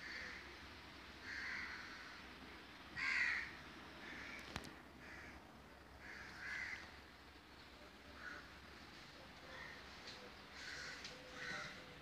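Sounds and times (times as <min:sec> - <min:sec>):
bird calling: 0:09.4 - 0:12.0.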